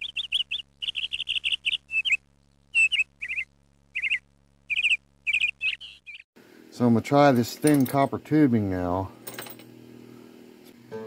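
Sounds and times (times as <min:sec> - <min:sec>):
small bird chirping: 0:00.0 - 0:06.3.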